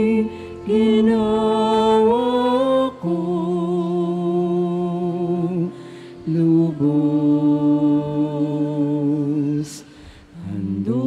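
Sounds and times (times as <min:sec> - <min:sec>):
person singing a hymn: 0:00.0 - 0:11.0.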